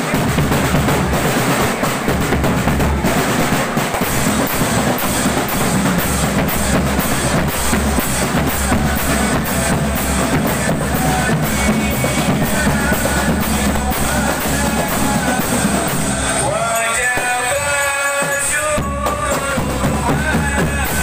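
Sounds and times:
snare and cymbal strokes: 0.0 - 20.7
marching drum band: 0.0 - 21.0.

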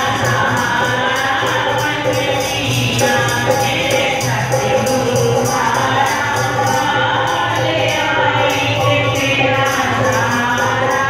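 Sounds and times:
dholak drum: 0.0 - 11.0
women singing devotional song: 0.0 - 11.0.

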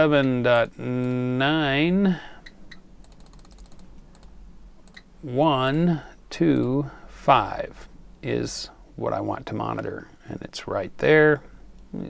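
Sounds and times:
computer mouse clicking: 3.0 - 5.0
small ticks: 3.0 - 5.0.

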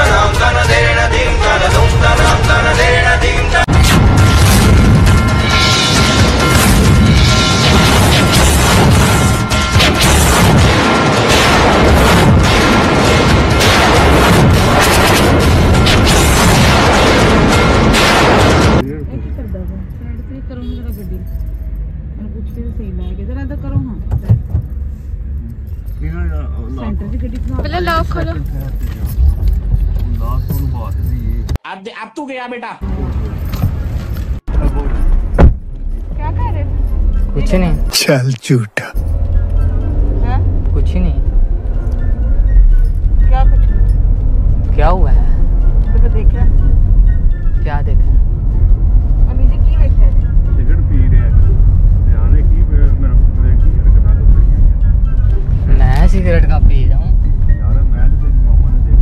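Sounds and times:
car engine and road rumble: 0.0 - 31.6, 32.8 - 59.0
voices talking: 37.4 - 39.0.

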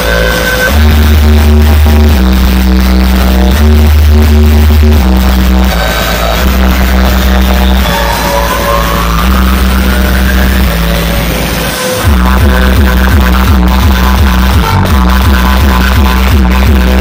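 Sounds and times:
electronic dance music: 0.0 - 17.0
fast pulsing bass beat: 0.0 - 17.0
rising synth sweep: 0.0 - 17.0.

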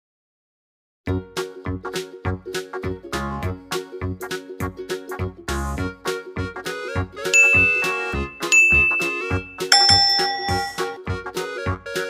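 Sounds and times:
upbeat background music: 3.4 - 12.0
high bell-like ding: 7.4 - 11.0.

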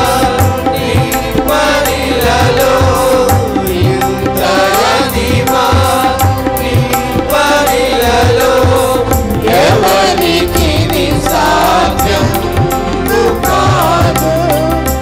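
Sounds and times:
choir singing worship song: 0.0 - 15.0
keyboard: 0.0 - 15.0
steady low drum beat: 0.0 - 15.0.

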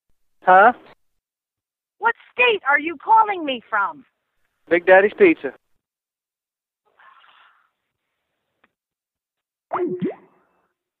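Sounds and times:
cartoon boing sound effect: 9.7 - 10.3.

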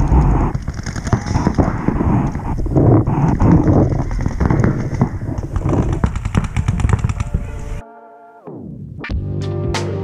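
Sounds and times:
paintball markers firing: 0.0 - 2.6, 3.3 - 7.4.

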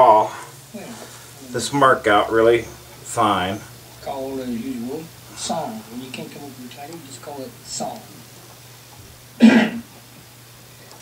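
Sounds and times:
faint steady hum: 0.0 - 11.0
person clearing throat: 9.4 - 9.9.

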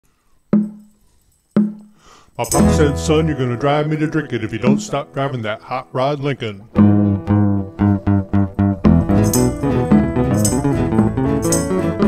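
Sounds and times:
low digital keyboard notes: 2.5 - 5.5, 6.6 - 12.0.

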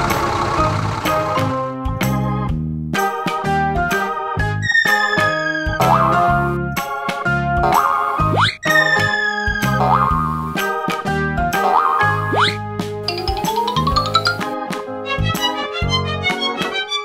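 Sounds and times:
upbeat cartoon music: 1.0 - 17.0.

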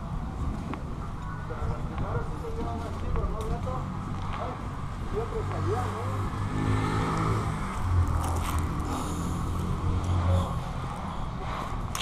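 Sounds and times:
vehicle engine humming: 3.6 - 12.0.

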